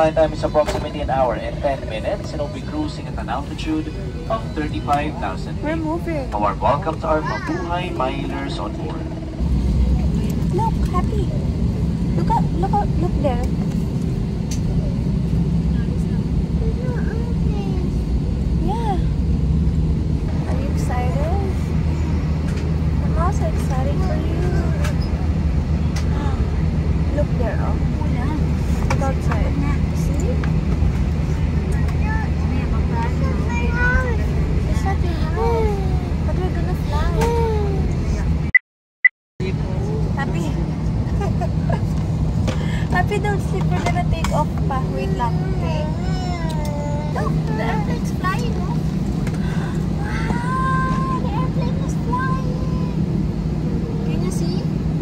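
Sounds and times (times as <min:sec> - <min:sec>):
airliner cabin rumble: 0:00.0 - 0:38.6, 0:39.4 - 0:55.0
jet engines humming: 0:00.0 - 0:38.6, 0:39.4 - 0:55.0.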